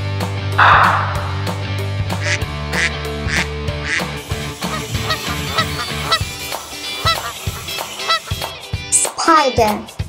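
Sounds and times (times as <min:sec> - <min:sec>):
background music with steady beat: 0:00.0 - 0:10.0
duck quacking: 0:02.2 - 0:08.5.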